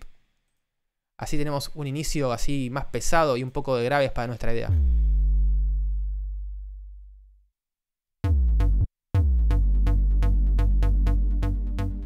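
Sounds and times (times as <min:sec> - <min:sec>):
distorted sub bass note: 0:04.7 - 0:07.3, 0:08.3 - 0:12.0.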